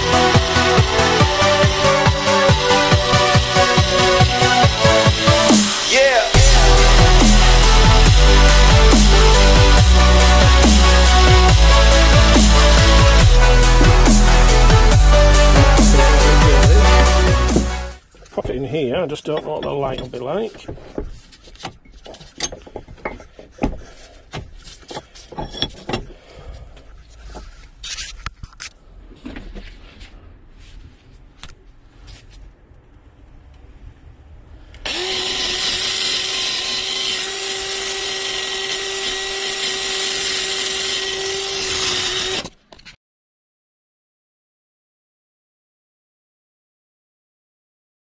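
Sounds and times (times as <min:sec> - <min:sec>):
power drill whining: 0:00.0 - 0:17.9, 0:34.8 - 0:42.6
tools clattering: 0:19.2 - 0:23.8, 0:24.6 - 0:26.2.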